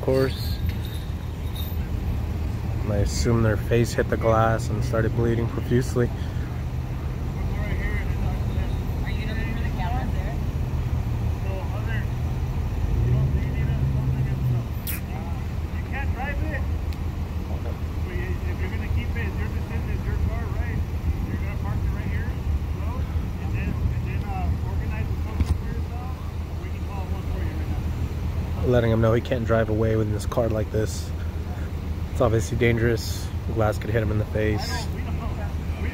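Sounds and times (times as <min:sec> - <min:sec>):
engine idling low hum: 0:00.0 - 0:35.9
people talking indistinctly: 0:00.0 - 0:35.9.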